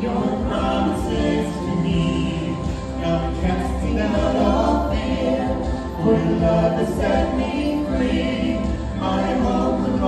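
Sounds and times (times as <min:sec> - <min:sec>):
low musical accompaniment: 0:00.0 - 0:10.0
vocal trio singing in harmony: 0:00.0 - 0:10.0.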